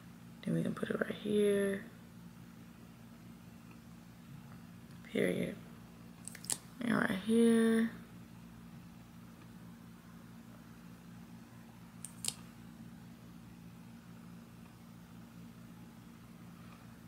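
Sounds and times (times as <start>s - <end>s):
low electrical hum: 0.0s - 17.0s
small clicks: 12.0s - 12.4s.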